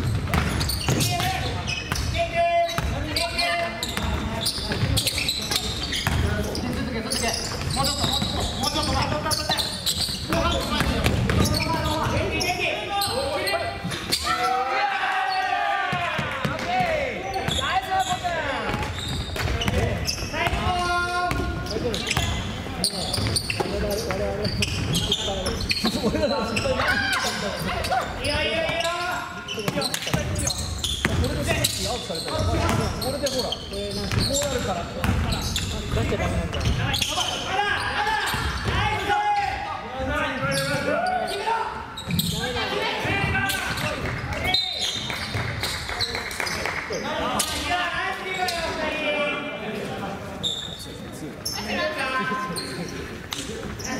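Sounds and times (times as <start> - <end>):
basketball bouncing on wooden floor: 34.1 - 35.3.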